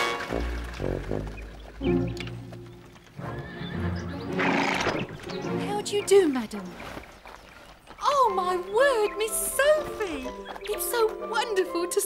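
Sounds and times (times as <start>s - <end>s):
background music: 0.0s - 6.7s, 8.0s - 12.0s
hooves clip-clopping: 0.0s - 12.0s
horse whinnying: 3.2s - 5.2s.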